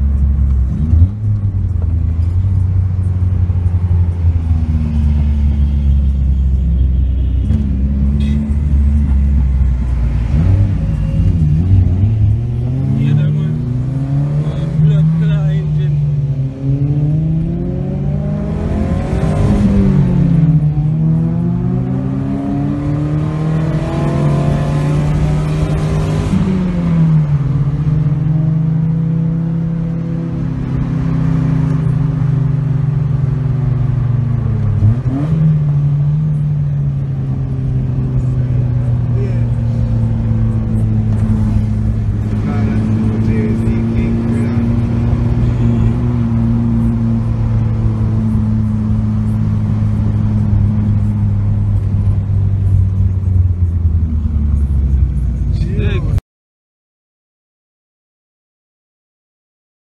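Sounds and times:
car engine accelerating: 0.0 - 6.5, 7.4 - 56.2.

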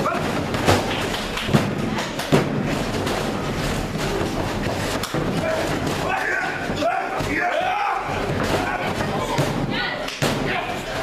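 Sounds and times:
people yelling: 5.4 - 11.0.

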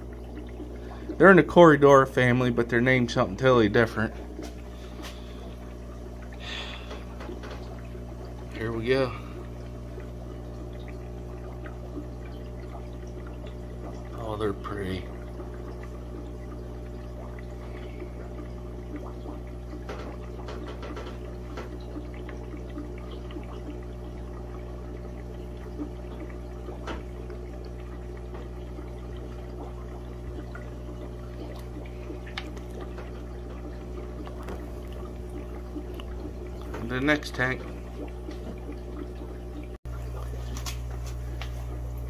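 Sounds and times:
aquarium water trickling: 0.0 - 42.0
low constant hum: 0.0 - 42.0.

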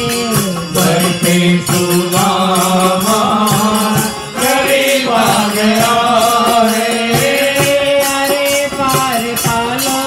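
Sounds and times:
devotional song sung through microphones: 0.0 - 10.0
percussion steady beat: 0.0 - 10.0
sustained pitched accompaniment: 0.0 - 10.0.

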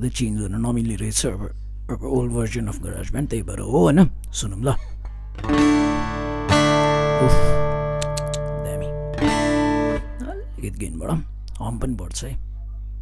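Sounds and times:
low electrical hum: 0.0 - 13.0
acoustic guitar strummed: 5.4 - 10.4.

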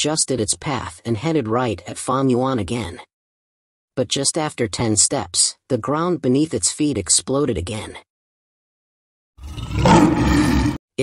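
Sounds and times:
bear roaring: 9.4 - 10.8.

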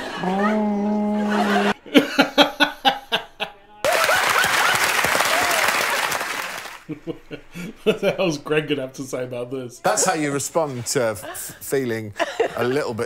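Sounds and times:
audience laughing: 0.0 - 8.3
audience applauding: 3.8 - 6.9.

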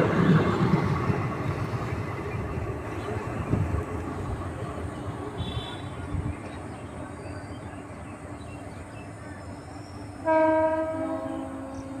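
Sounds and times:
train running noise: 0.0 - 12.0
train horn blast: 5.4 - 6.0, 10.2 - 12.0.

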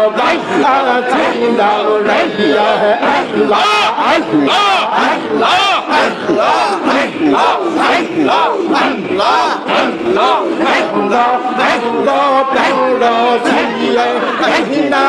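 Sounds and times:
crowd of men chanting: 0.0 - 15.0.

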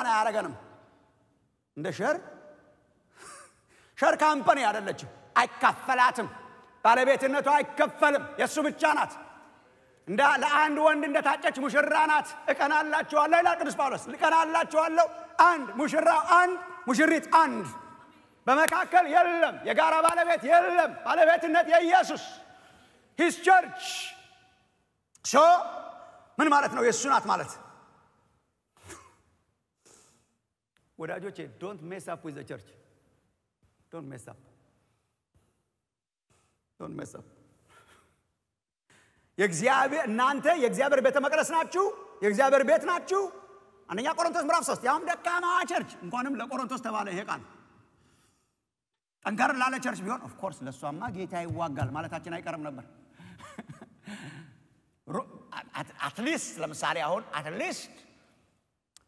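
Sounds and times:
man breathing: 37.5 - 39.4.

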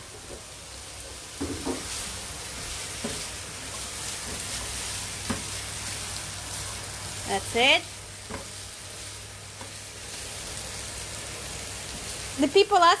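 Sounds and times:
stir-fry sizzling in a frying pan: 0.0 - 13.0.

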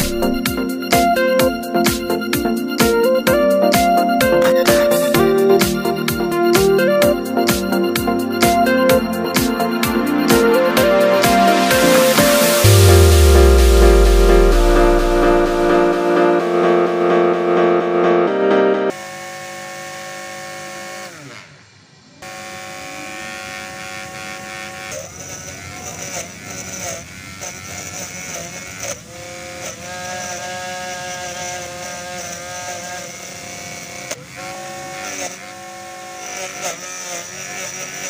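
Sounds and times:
small electric motor whining: 0.0 - 15.6, 18.9 - 38.0
blade cutting grass: 0.0 - 15.9, 18.9 - 38.0.

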